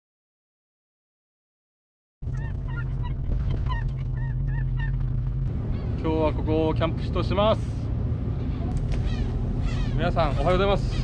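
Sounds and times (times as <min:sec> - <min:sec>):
gulls calling: 0:02.2 - 0:11.0
low rumble: 0:02.2 - 0:11.0.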